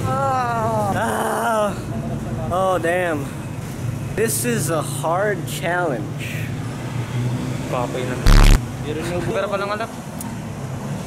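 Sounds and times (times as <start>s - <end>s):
street traffic hum: 0.0s - 11.0s.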